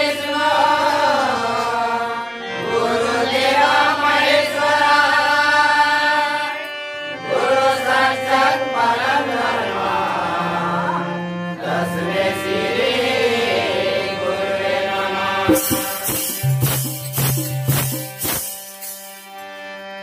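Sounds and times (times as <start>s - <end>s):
men singing devotional song: 0.0s - 16.8s
harmonium: 0.0s - 20.0s.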